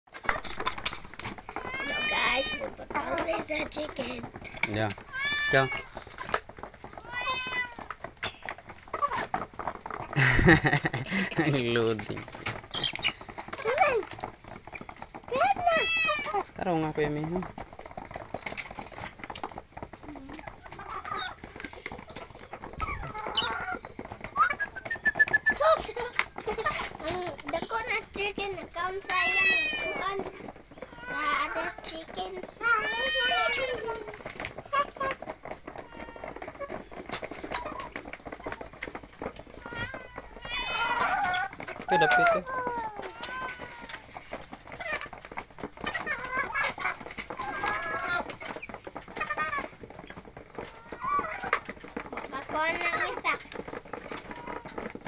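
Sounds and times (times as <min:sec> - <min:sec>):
chickens pecking beak taps: 0:00.1 - 0:55.0.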